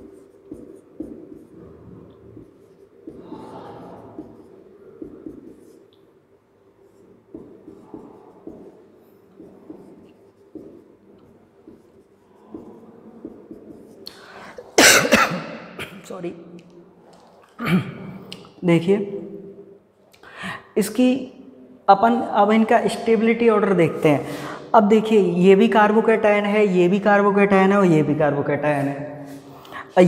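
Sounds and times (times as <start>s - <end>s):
marker squeaking on whiteboard: 0.0s - 6.1s, 6.8s - 14.1s
man coughing loudly: 14.8s - 16.1s.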